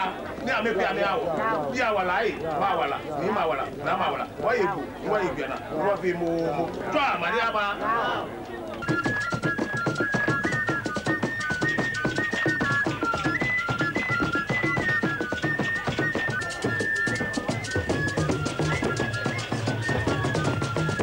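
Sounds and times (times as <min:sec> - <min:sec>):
drum ensemble rhythm: 0:08.8 - 0:21.0.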